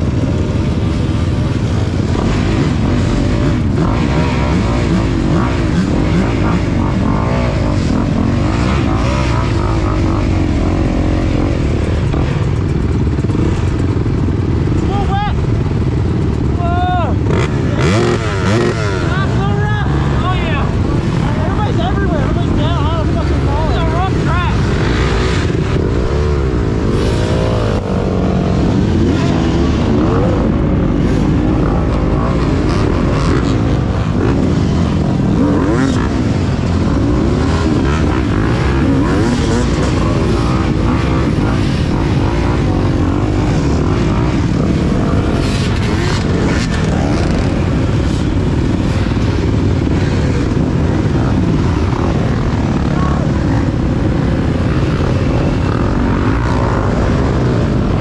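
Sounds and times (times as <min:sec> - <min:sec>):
close dirt bike engine: 0:00.0 - 0:58.0
dirt bike engines revving: 0:00.0 - 0:58.0.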